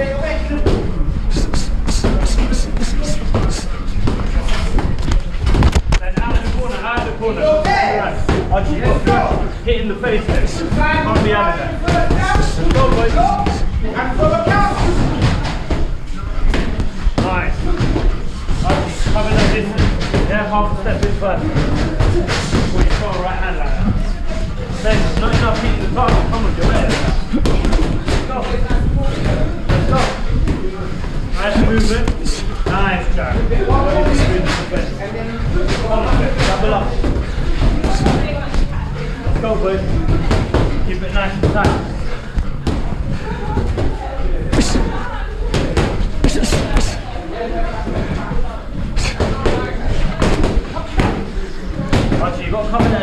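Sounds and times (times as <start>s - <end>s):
indistinct voices: 0.0s - 53.0s.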